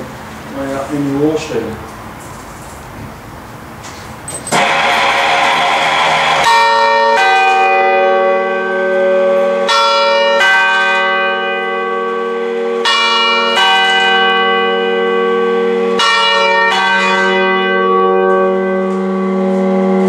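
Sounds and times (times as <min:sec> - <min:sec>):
church bells ringing: 0:04.4 - 0:20.0.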